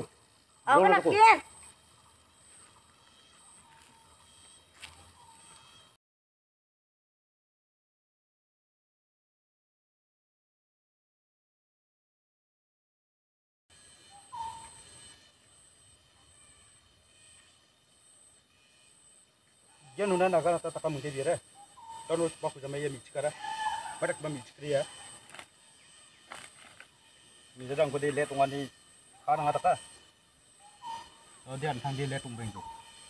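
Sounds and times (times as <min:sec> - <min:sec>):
high-pitched insect buzz: 0:00.0 - 0:06.0, 0:13.7 - 0:33.0.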